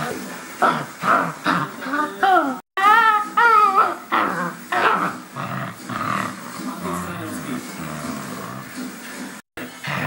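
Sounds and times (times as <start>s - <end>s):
puppy growling: 0.0s - 8.8s.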